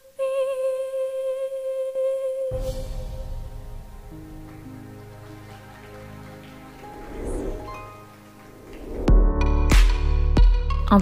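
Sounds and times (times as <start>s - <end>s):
woman singing long high note: 0.0s - 3.0s.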